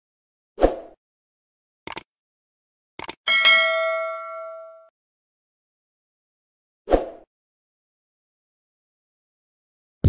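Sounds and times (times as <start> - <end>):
mouse clicks: 1.9 - 2.1, 3.0 - 3.2
notification bell ding: 3.3 - 4.9.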